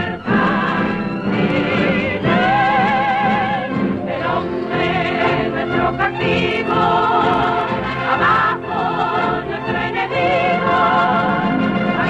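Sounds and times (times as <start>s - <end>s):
musical accompaniment: 0.0s - 12.0s
women's chorus singing: 0.0s - 12.0s.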